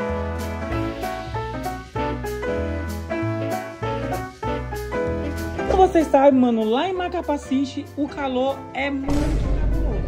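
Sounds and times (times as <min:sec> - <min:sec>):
instrumental music with beat: 0:00.0 - 0:08.0.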